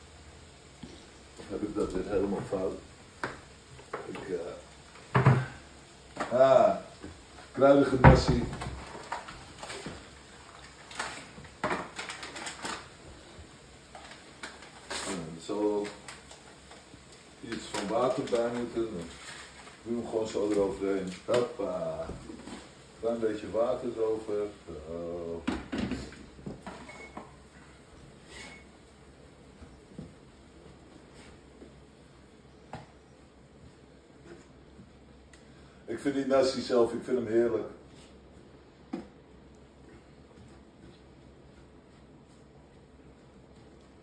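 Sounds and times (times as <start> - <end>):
low room noise: 0.0 - 44.0.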